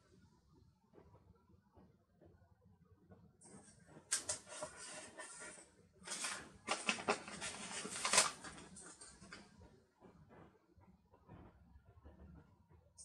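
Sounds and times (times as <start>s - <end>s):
paper sticker sheets rustling: 4.1s - 9.5s.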